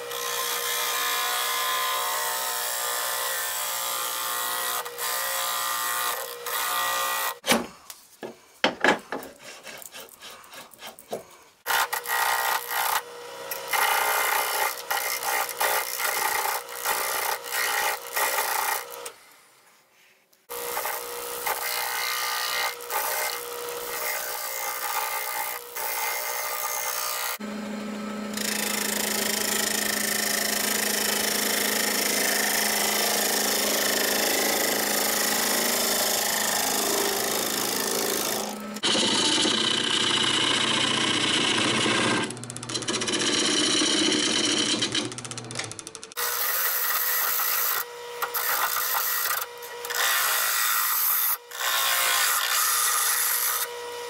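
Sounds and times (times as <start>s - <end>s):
lathe tool scraping wood: 9.1s - 19.2s, 20.5s - 54.0s.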